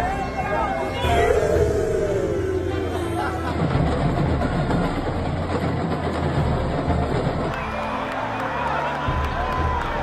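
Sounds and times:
drums and percussion beating: 0:00.0 - 0:08.4
stadium crowd: 0:00.0 - 0:10.0.

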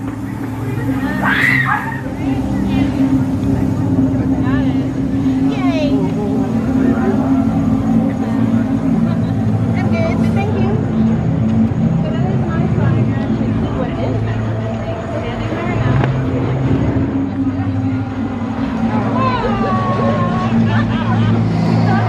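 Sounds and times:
crowd voices: 0:00.0 - 0:22.0
ominous low drone over loudspeakers: 0:00.0 - 0:22.0.

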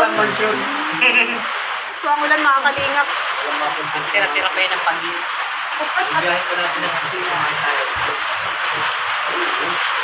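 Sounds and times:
heavy rain on corrugated roof: 0:00.0 - 0:10.0.

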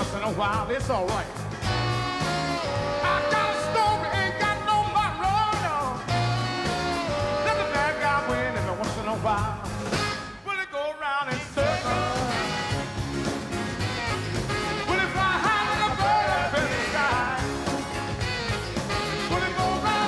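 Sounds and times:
live rock and soul band: 0:00.0 - 0:10.5, 0:11.4 - 0:20.0
saxophone: 0:01.6 - 0:10.4, 0:11.6 - 0:20.0
person singing: 0:02.6 - 0:06.2, 0:07.0 - 0:09.6.

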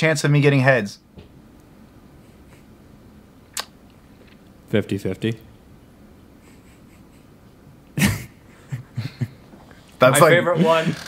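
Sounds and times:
man laughing: 0:06.4 - 0:09.5, 0:10.2 - 0:11.0.

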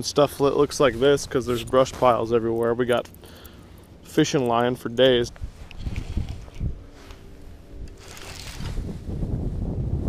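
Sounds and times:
knocks and rustling of fishing reel: 0:05.2 - 0:08.8
wind rumble on microphone: 0:05.2 - 0:10.0.

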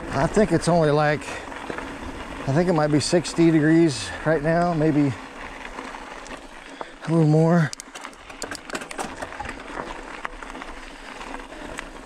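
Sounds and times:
bicycle tyres crunching on stones: 0:00.0 - 0:12.0
bike clicks and rattles: 0:00.0 - 0:12.0.

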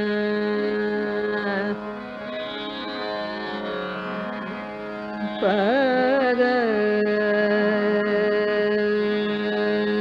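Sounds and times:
woman singing ornamented phrases: 0:00.0 - 0:01.8, 0:05.4 - 0:10.0
steady drone: 0:00.0 - 0:08.0.

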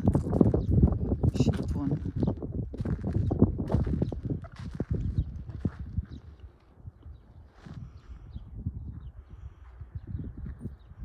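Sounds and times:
footsteps crunching on gravel: 0:00.1 - 0:06.7.

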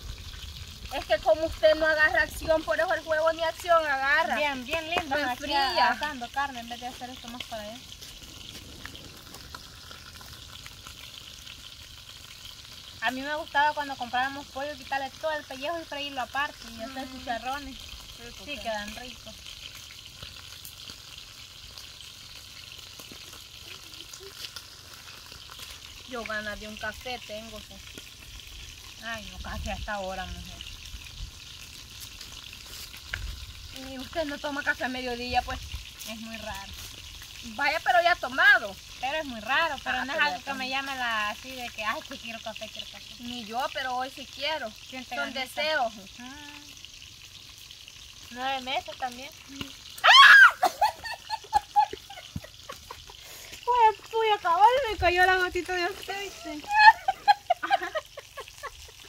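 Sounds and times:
chicken frying in hot oil: 0:00.0 - 0:59.0.

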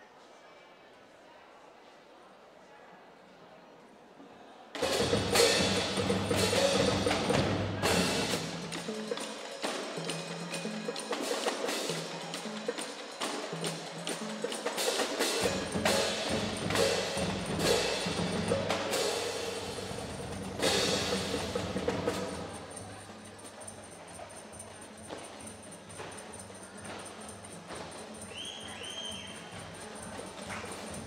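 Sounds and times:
drums: 0:04.8 - 0:31.0
ringing pitched percussion: 0:04.8 - 0:31.0.

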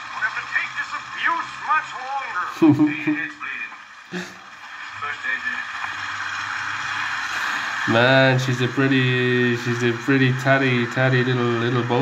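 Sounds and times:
man's voice: 0:07.9 - 0:12.0.

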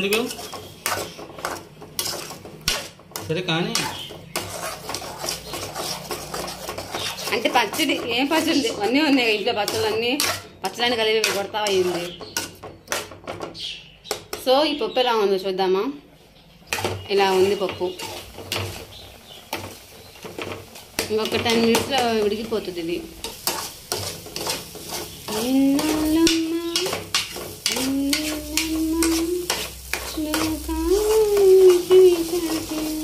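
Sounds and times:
pot boiling and bubbling: 0:00.0 - 0:13.4, 0:16.6 - 0:33.0
metal spatula scraping a pan: 0:00.0 - 0:13.6, 0:16.6 - 0:33.0.

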